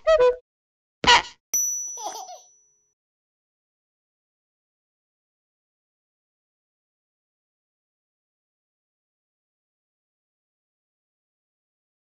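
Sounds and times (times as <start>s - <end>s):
bell-like ding: 1.6s - 2.8s
baby laughing: 2.0s - 2.5s.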